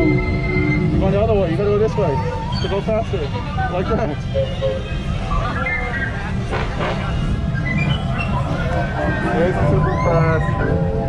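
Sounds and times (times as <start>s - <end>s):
voices: 0.9s - 11.0s.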